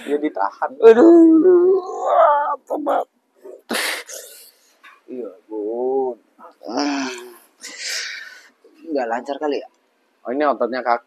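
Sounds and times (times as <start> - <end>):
man crying out: 0.8 - 3.0
man moaning and whimpering: 0.8 - 3.7
sharp hissing breath: 3.7 - 4.6.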